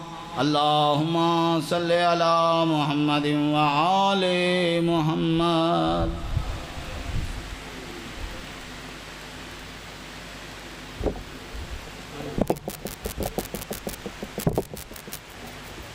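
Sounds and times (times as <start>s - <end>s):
room hiss: 0.0s - 15.9s
thump: 11.0s - 11.2s.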